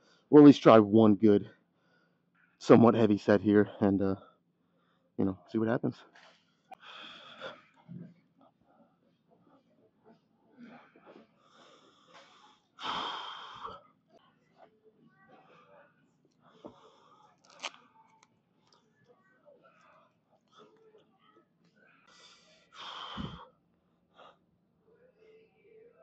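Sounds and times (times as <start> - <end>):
hard forceful breaths: 10.6 - 13.8, 22.1 - 23.5.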